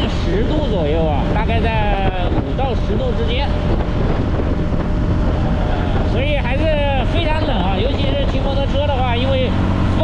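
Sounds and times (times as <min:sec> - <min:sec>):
man talking: 0:00.0 - 0:03.6, 0:05.9 - 0:10.0
motorcycle running: 0:00.0 - 0:10.0
wind noise on microphone: 0:00.0 - 0:10.0.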